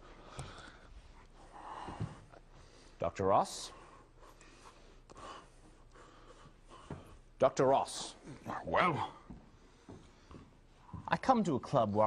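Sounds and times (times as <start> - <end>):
faint breath: 0.0 - 3.0.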